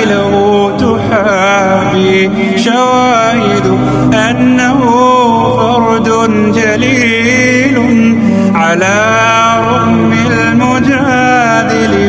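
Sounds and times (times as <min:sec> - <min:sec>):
low sustained drone: 0:00.0 - 0:12.0
man singing melodic line: 0:00.0 - 0:12.0.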